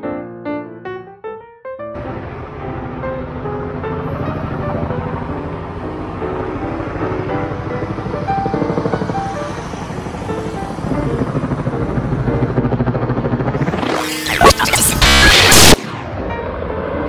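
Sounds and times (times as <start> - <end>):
helicopter rotor chopping: 2.0 - 17.0.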